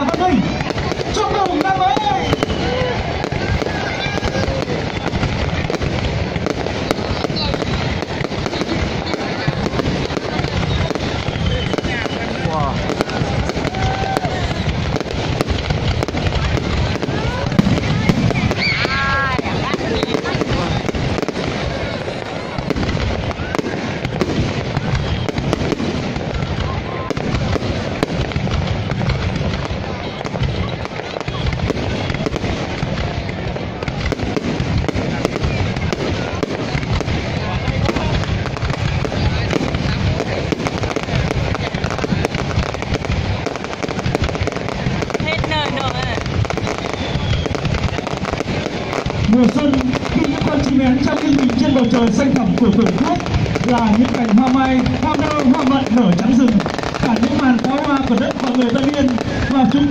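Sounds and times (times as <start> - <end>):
fireworks bursting: 0.0 - 59.9.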